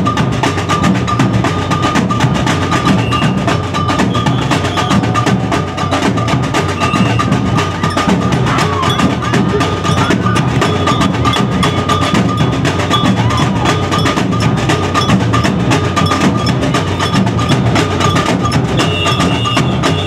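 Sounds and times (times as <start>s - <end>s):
samba percussion band drumming: 0.0s - 20.0s
high ringing tone: 7.8s - 20.0s.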